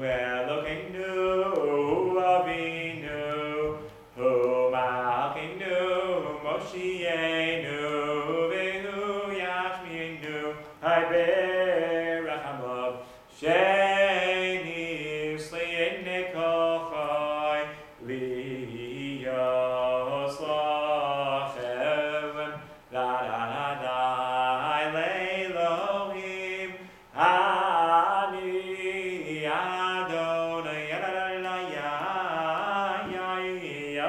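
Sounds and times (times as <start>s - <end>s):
man singing unaccompanied: 0.0s - 34.0s
man breathing: 13.0s - 13.3s, 26.8s - 27.1s.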